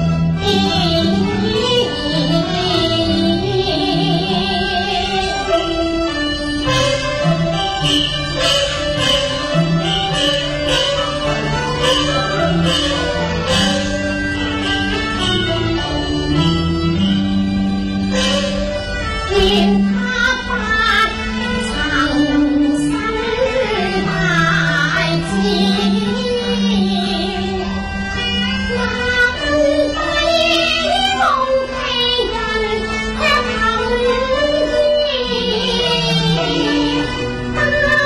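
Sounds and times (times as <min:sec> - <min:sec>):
opera instrumental ensemble: 0:00.0 - 0:38.0
woman singing opera: 0:33.2 - 0:38.0.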